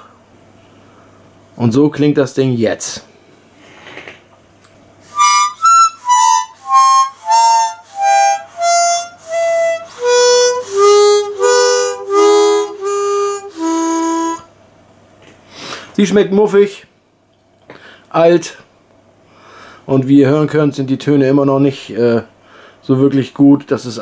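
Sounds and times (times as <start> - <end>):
harmonica notes and chords: 5.0 - 14.5.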